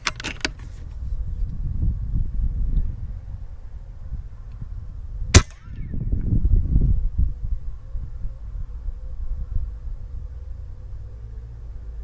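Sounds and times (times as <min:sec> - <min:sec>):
wind rumble on microphone: 0:00.0 - 0:12.0
air rifle shot crack: 0:05.3 - 0:06.2.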